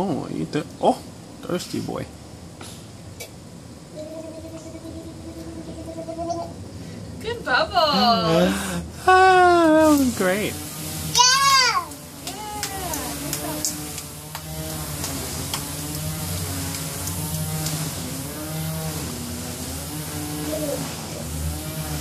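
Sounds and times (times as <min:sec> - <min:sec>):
low hummed voice: 0:03.9 - 0:06.6, 0:07.9 - 0:10.1.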